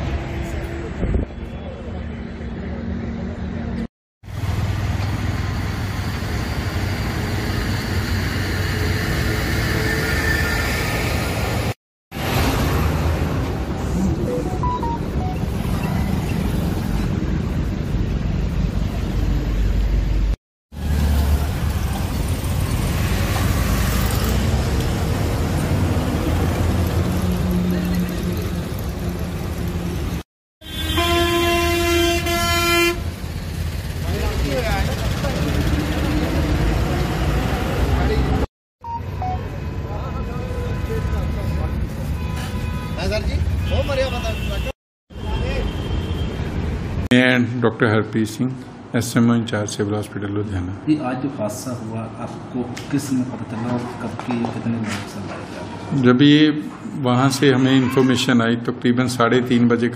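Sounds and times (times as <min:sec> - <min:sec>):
roadside traffic: 0:00.0 - 0:59.9.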